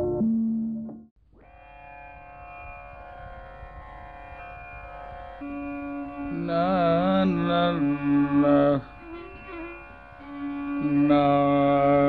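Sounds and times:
steady drone: 0:01.5 - 0:12.0
intro tune: 0:05.4 - 0:12.0.

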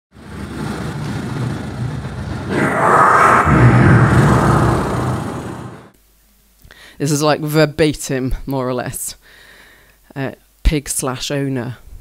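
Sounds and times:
loud noisy wash sound effect: 0:02.5 - 0:05.9
low hum: 0:02.5 - 0:05.9.

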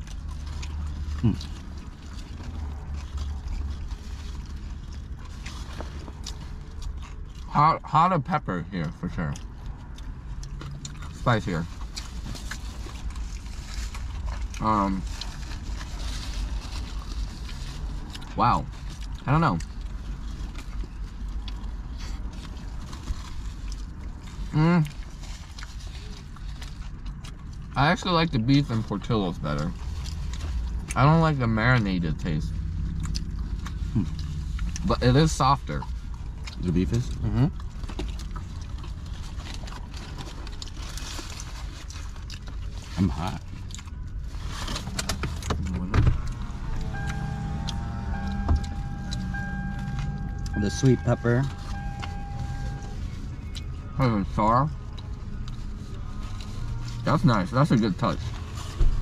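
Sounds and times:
people chewing: 0:00.0 - 0:07.5, 0:08.8 - 0:59.0
low rumble inside a car: 0:00.0 - 0:59.0
foil wrappers rustling: 0:11.8 - 0:18.9, 0:35.8 - 0:45.4
foil wrappers crinkling: 0:11.8 - 0:35.2, 0:35.8 - 0:57.1
low hum: 0:29.6 - 0:59.0
steady held tone: 0:46.5 - 0:53.0.

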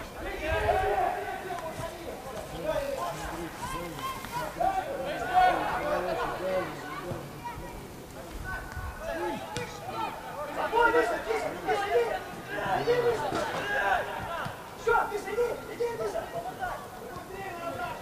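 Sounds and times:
distant players shouting: 0:00.0 - 0:07.7.

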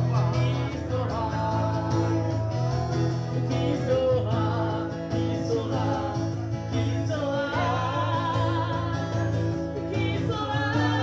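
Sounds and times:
acoustic guitar playing: 0:00.0 - 0:11.0
woman singing into a microphone: 0:06.8 - 0:11.0.

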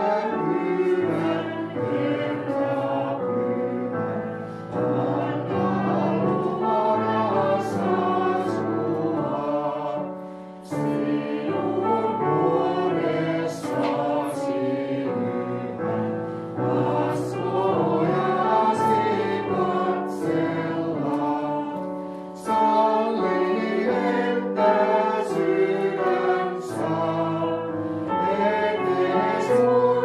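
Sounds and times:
group singing a hymn: 0:00.0 - 0:30.0
keyboard accompaniment: 0:00.0 - 0:30.0.

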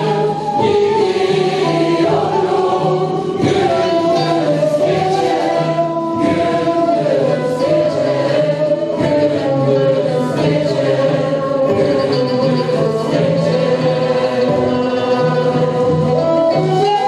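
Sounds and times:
baglama lute: 0:00.0 - 0:17.0
frame drums: 0:00.0 - 0:17.0
mixed choir singing a folk song: 0:00.0 - 0:17.0
ney flute: 0:00.0 - 0:17.0.

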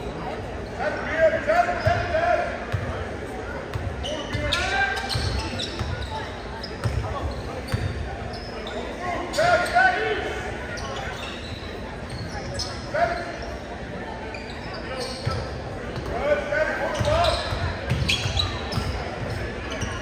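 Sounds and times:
voices of players and spectators: 0:00.0 - 0:20.0.

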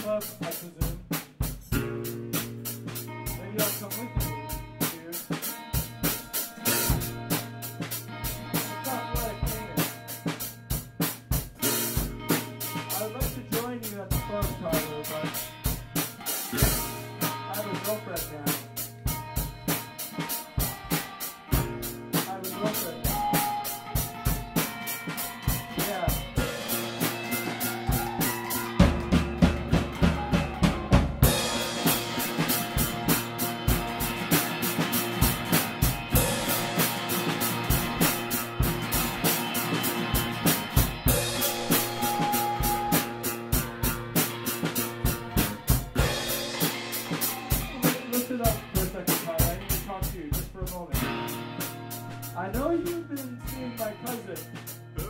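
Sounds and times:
drum kit beat: 0:00.0 - 0:55.0
bass notes: 0:01.5 - 0:05.1, 0:05.8 - 0:20.1, 0:21.5 - 0:24.8, 0:25.4 - 0:55.0
guitar notes: 0:01.7 - 0:50.2, 0:50.8 - 0:55.0.

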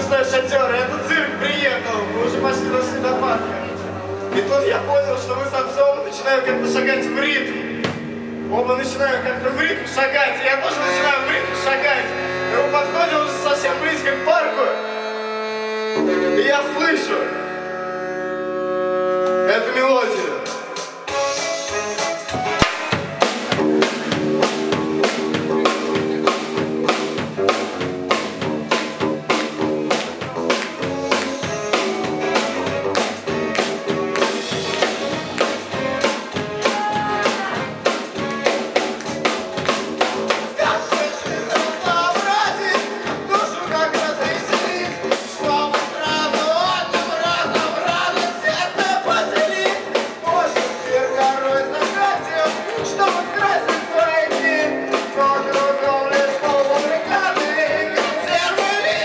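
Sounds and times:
keyboard: 0:00.0 - 0:59.0
live band music: 0:00.0 - 0:59.0
drum kit fast beat: 0:20.6 - 0:59.0
electric guitar: 0:21.2 - 0:47.7.

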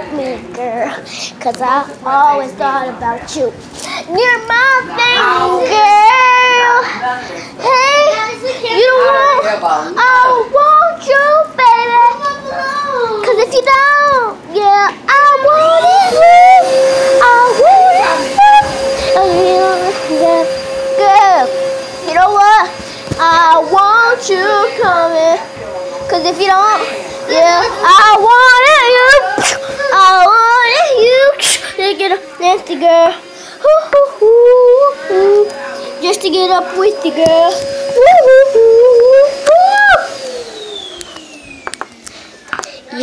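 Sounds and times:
child singing wordlessly: 0:00.0 - 0:06.9, 0:07.6 - 0:25.5, 0:26.1 - 0:39.3.

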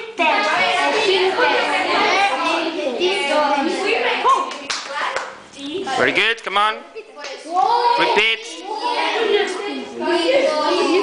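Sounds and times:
voices talking: 0:05.6 - 0:11.0.

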